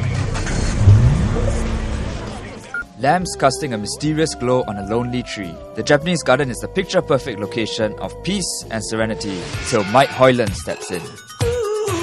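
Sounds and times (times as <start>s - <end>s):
dense low music: 0.2s - 2.8s
rising pitched sweep: 0.4s - 2.8s.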